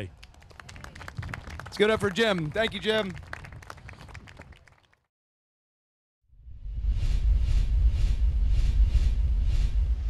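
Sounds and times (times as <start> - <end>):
audience applauding: 0.0 - 5.1.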